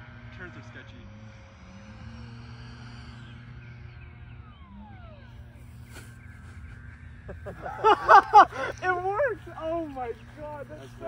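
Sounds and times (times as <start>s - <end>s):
electric ducted fan whining: 0.0s - 11.0s.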